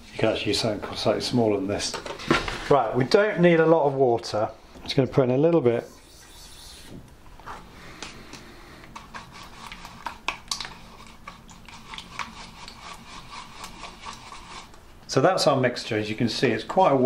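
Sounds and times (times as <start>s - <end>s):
paintbrush stirring glue in plastic tub: 8.8s - 15.6s.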